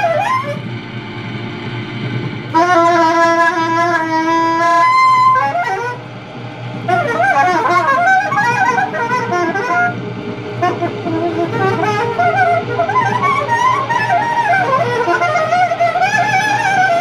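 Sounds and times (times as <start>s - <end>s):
soprano saxophone: 0.0s - 0.7s, 2.5s - 6.1s, 6.8s - 17.0s
low steady hum: 0.0s - 17.0s
warbling sliding pitches: 0.0s - 17.0s.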